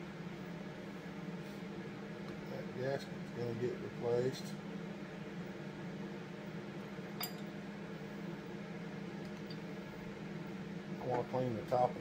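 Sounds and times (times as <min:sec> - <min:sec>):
steady machine hum: 0:00.0 - 0:12.0.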